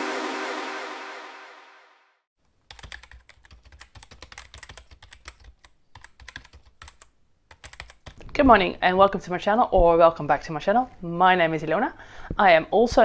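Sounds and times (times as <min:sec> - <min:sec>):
intro music: 0:00.0 - 0:02.2
typing on computer keyboard: 0:02.7 - 0:08.2.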